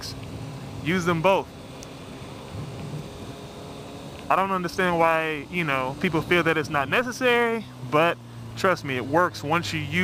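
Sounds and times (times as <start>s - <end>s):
motorcycle engine and road noise: 0.0s - 10.0s
wind rush: 2.4s - 3.2s.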